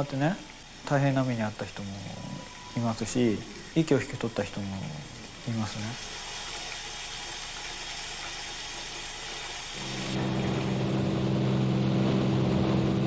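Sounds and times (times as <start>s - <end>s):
steady hiss: 0.0s - 13.0s
aircraft engine drone: 9.8s - 13.0s.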